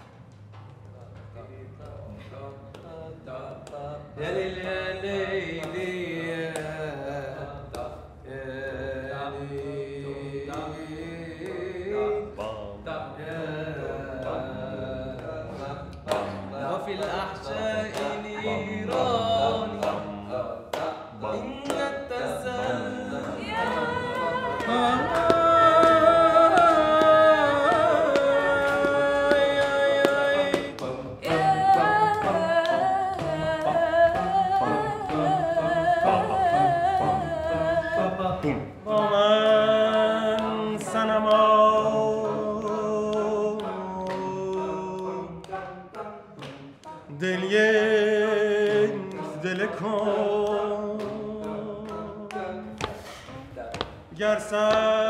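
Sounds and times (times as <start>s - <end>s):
voices chanting: 0.9s - 55.0s
person singing with vibrato: 2.4s - 55.0s.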